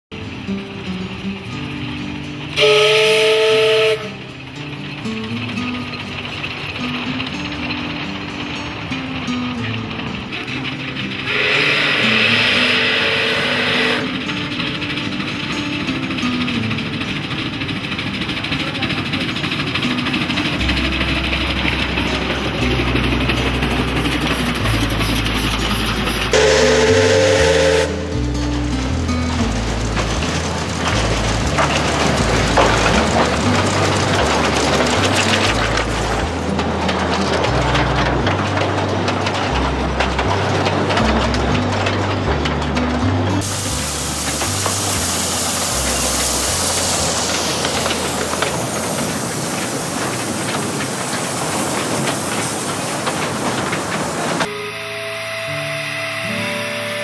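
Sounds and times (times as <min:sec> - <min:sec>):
background music: 0:00.1 - 0:50.0, 0:54.4 - 0:57.0
steam locomotive whistle: 0:02.5 - 0:04.5, 0:11.0 - 0:14.6, 0:24.8 - 0:28.4, 0:54.4 - 0:57.0.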